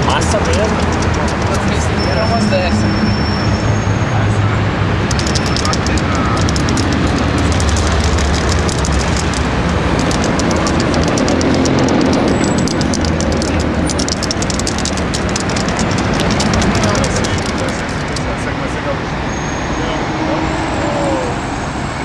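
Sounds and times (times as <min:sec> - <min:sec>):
city traffic rumble: 0:00.0 - 0:22.0
indistinct voices: 0:00.0 - 0:22.0
faint crackle of small clicks: 0:05.1 - 0:18.3.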